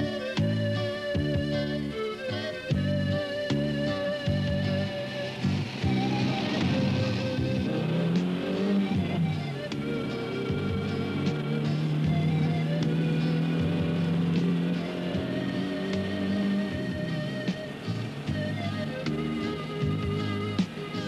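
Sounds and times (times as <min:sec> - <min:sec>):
film soundtrack music: 0:00.0 - 0:21.0.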